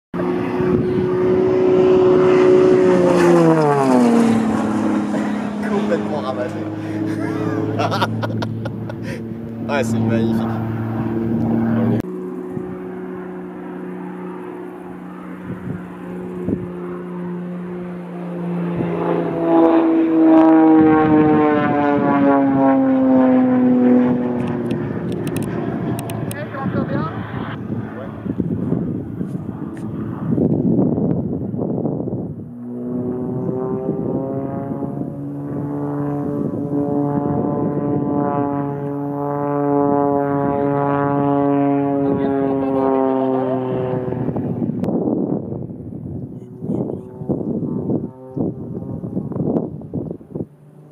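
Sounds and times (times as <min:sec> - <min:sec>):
plane engine and propeller droning: 0:00.2 - 0:50.9.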